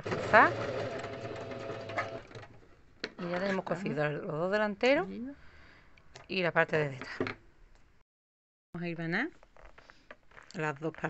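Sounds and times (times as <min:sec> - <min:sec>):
electric sewing machine stitching: 0:00.0 - 0:02.6.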